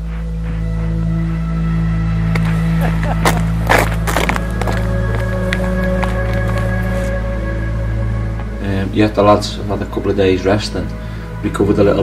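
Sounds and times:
low droning music: 0:00.0 - 0:12.0.

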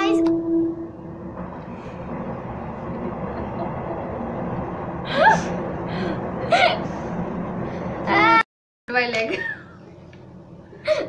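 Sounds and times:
train passing by: 0:00.0 - 0:08.4.

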